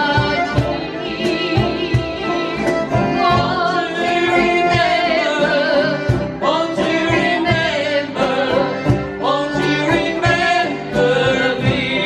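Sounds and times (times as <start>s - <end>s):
strummed banjo and guitars: 0.0s - 12.0s.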